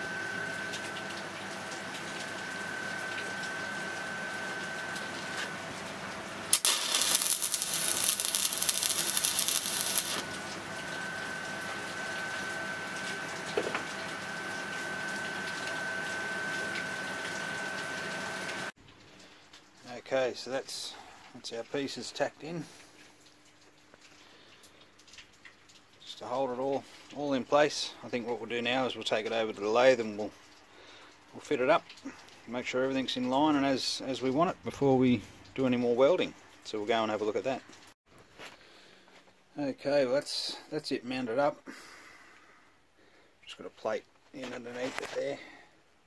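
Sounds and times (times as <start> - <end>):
welding arc crackling: 6.5 - 10.5.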